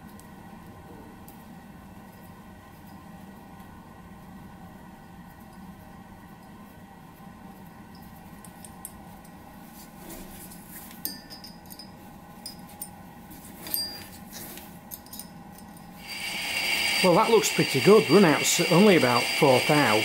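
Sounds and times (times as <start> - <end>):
faint steady hum: 0.0 - 20.0
metallic clicks and clinks: 11.0 - 11.9, 14.9 - 16.0
lathe running: 16.0 - 20.0.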